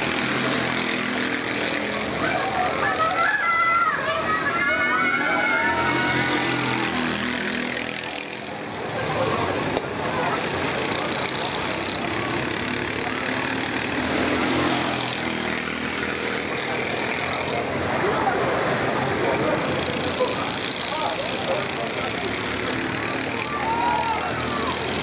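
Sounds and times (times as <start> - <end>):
racing kart engines buzzing: 0.0 - 25.0.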